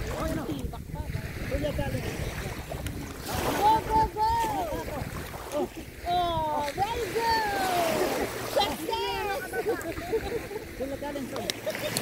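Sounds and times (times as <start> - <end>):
water splashing: 0.0 - 12.0
person calling out: 6.0 - 9.6.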